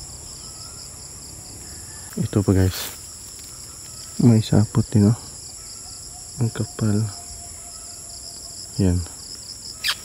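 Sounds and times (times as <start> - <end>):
insects buzzing shrilly: 0.0 - 10.0.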